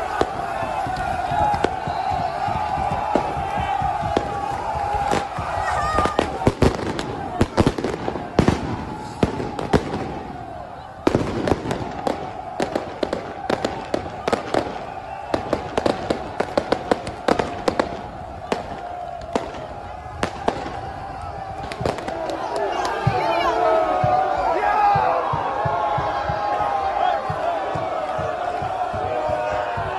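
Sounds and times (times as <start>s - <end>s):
firecrackers banging: 0.0s - 23.3s
crowd chanting and shouting: 0.0s - 29.9s.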